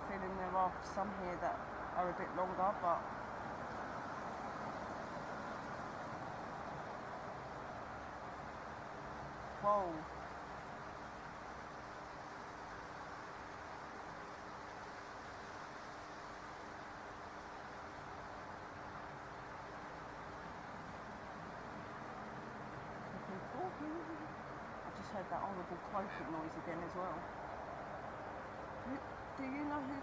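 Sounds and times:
faint hiss: 0:00.0 - 0:30.0.

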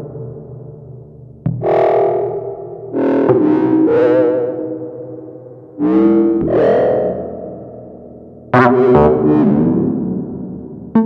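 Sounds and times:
synthesizer struck notes: 0:01.5 - 0:11.0.

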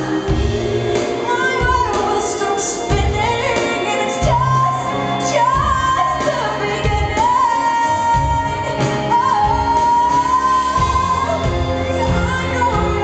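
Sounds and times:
instrumental accompaniment: 0:00.0 - 0:13.0
woman singing into microphone: 0:00.0 - 0:13.0.

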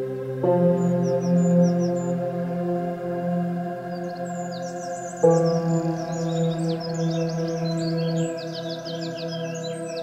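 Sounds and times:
birds chirping and trilling: 0:00.0 - 0:10.0.

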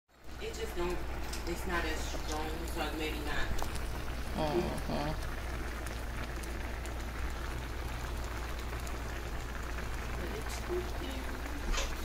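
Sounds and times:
shrimp sizzling in butter: 0:00.2 - 0:12.0.

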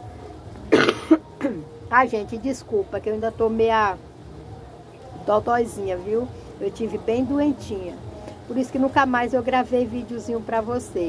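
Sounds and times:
woman coughing: 0:00.7 - 0:01.7.

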